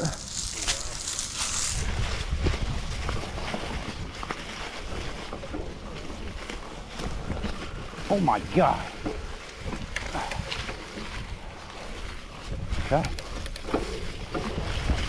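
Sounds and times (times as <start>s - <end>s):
bike rattling over bumps: 0.0s - 15.0s
bike tyres brushing through grass: 0.0s - 15.0s.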